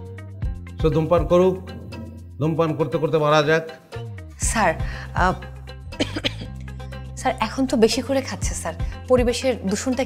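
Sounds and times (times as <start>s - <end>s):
background music with bass line: 0.0s - 3.0s
man coughing: 6.0s - 6.6s.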